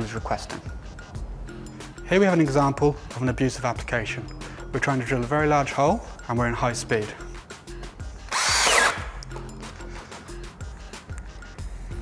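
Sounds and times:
background music: 0.0 - 12.0
drill bit grinding wood: 8.3 - 9.1
drill motor whining: 8.3 - 9.2.

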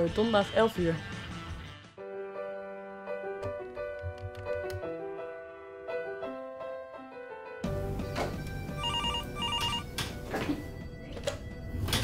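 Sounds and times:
telephone ringing electronic trills: 8.7 - 10.0.

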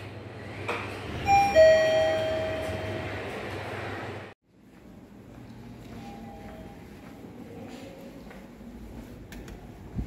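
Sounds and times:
low hum of elevator machinery: 0.0 - 10.0
elevator chime ding-dong: 1.2 - 3.2, 6.0 - 6.9.

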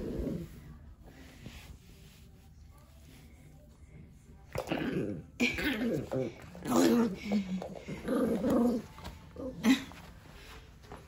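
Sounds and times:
dog growling: 4.6 - 9.8.

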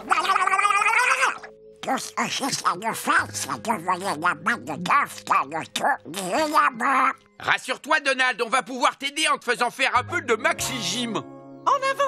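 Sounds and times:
cartoon duck voice squawking: 0.0 - 7.2.

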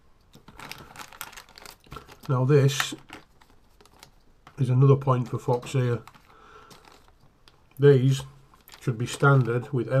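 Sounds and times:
plastic bag crinkling: 0.3 - 10.0.

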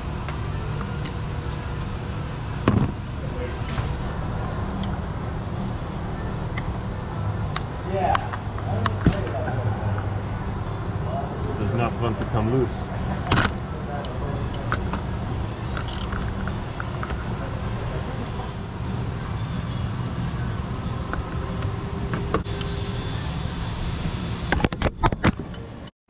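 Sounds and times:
steady low hum: 0.0 - 25.9.

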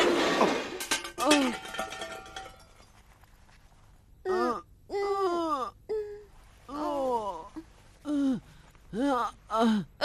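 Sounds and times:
faint ringing: 0.8 - 3.3.

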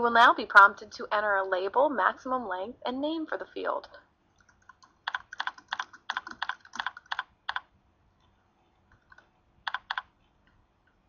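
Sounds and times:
computer keyboard typing: 4.4 - 7.7, 8.9 - 10.1.

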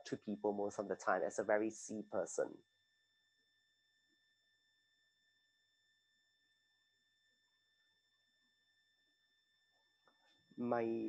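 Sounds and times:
faint high-pitched whine: 0.0 - 11.0.

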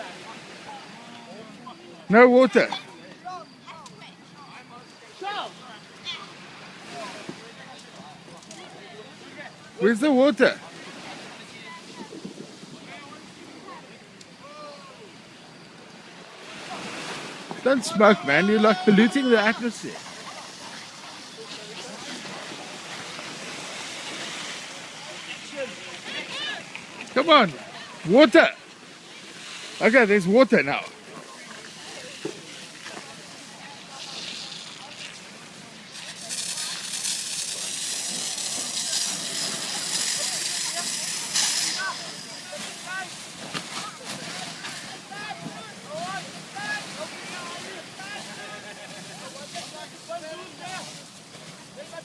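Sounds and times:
faint voices: 0.0 - 52.0
fire rushing: 15.9 - 52.0
crackling flames: 30.8 - 52.0
hose spray hissing: 31.5 - 48.6.

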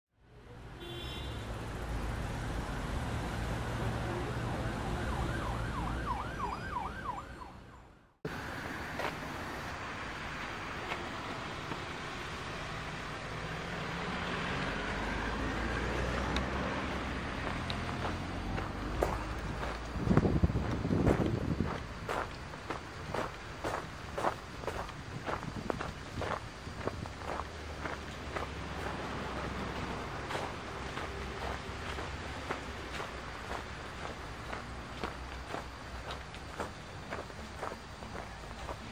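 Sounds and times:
road traffic rumble: 0.2 - 38.9
siren yelping: 4.0 - 8.0.

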